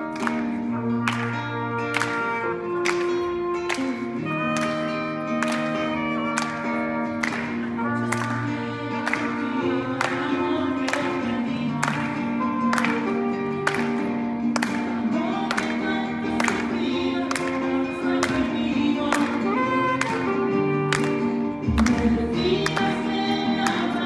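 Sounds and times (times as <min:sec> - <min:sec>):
guitar: 0:00.0 - 0:24.0.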